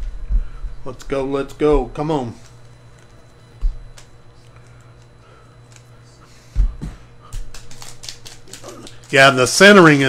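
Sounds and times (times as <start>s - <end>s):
foil wrapper crinkling and tearing: 7.3s - 10.0s.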